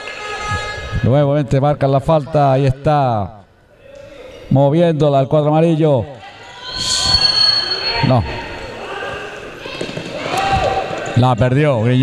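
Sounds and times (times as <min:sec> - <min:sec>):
high steady tones: 0:06.6 - 0:08.8.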